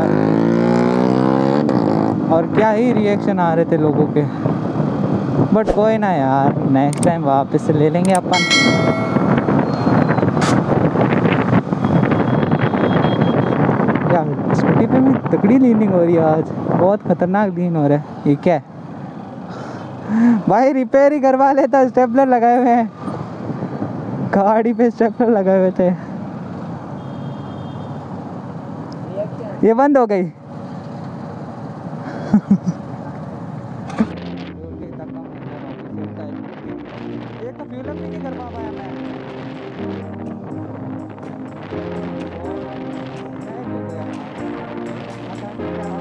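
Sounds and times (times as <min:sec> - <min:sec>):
engine and road noise: 0:00.0 - 0:46.0
wind rushing over microphone: 0:03.9 - 0:17.4, 0:38.6 - 0:45.3
sharp click: 0:06.9 - 0:07.2.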